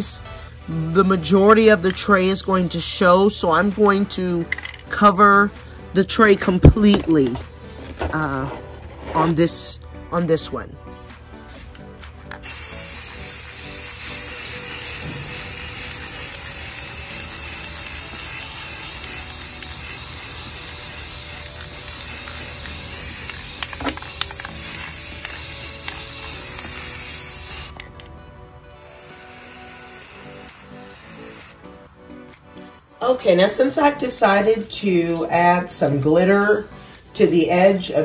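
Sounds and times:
spray paint can hissing: 11.6s - 28.1s, 28.7s - 31.9s.

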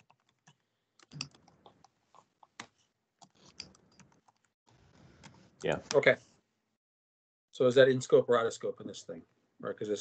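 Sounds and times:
computer keyboard typing: 0.0s - 4.6s.

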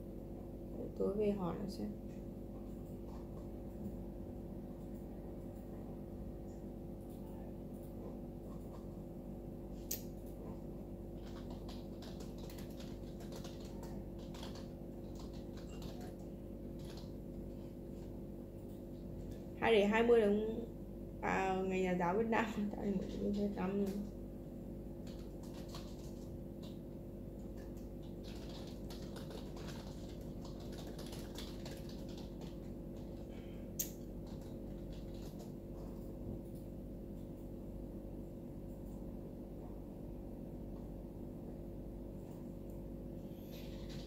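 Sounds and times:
low electrical hum: 0.0s - 44.0s
typing on computer keyboard: 11.1s - 17.3s, 22.8s - 24.1s, 25.0s - 36.7s, 43.6s - 44.0s.

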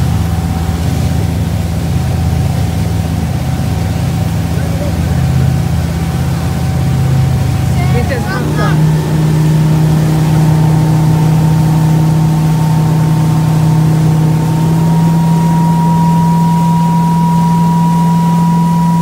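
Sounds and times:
churning wake water: 0.0s - 19.0s
motorboat engine humming: 0.0s - 19.0s.

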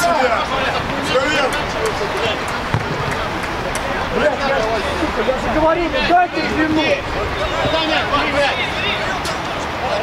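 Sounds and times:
players shouting: 0.0s - 10.0s.

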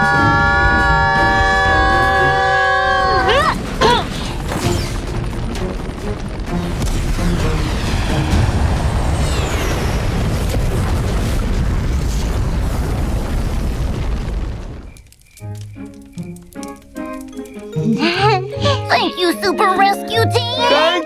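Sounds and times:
cartoon eruption rumbling boom: 0.0s - 15.0s
falling whistles: 7.7s - 10.5s, 14.8s - 17.8s
background music: 15.4s - 21.0s
plinking children's music: 15.4s - 21.0s.

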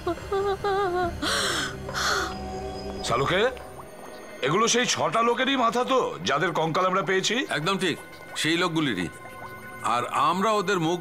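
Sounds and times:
woman sobbing: 0.0s - 2.2s
low steady hum: 0.0s - 5.4s.

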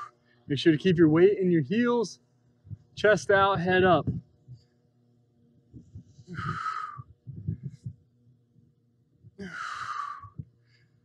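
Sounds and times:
man breathing hard: 5.8s - 8.0s, 9.3s - 11.0s.

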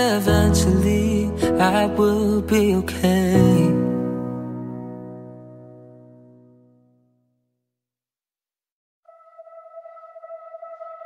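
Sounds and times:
sustained electronic note: 9.1s - 11.0s.

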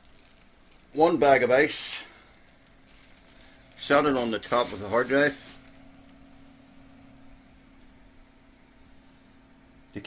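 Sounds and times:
computer hum: 0.0s - 10.0s.

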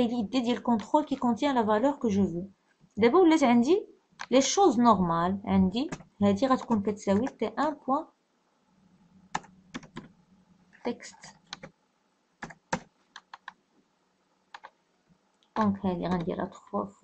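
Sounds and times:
computer keyboard typing: 5.8s - 7.4s, 9.3s - 10.1s, 11.3s - 11.7s, 12.4s - 13.6s, 14.5s - 14.8s, 15.6s - 16.5s.

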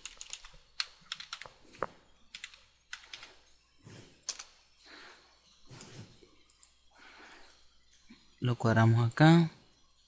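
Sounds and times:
typing on computer keyboard: 0.0s - 1.6s, 2.3s - 3.4s.

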